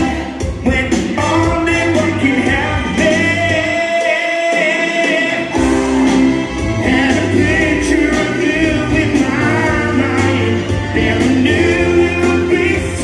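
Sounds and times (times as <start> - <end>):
man singing into a microphone: 0.0 - 5.6
live amplified music: 0.0 - 13.0.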